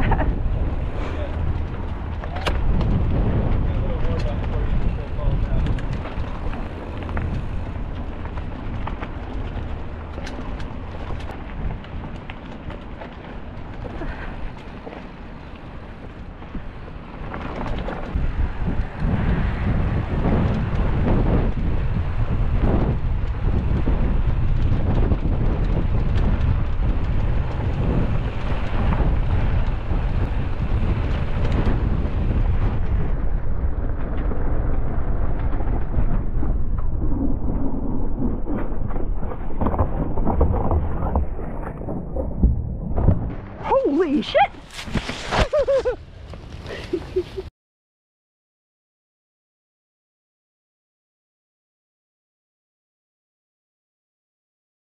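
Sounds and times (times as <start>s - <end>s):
bike rattles and clicks: 0.0s - 47.5s
bike tyres rumbling on dirt: 0.0s - 47.5s
wind buffeting microphone: 0.0s - 47.5s.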